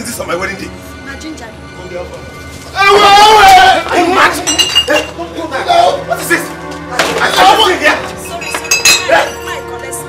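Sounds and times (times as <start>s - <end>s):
glass bottles clinking: 4.3s - 5.2s, 8.2s - 9.5s.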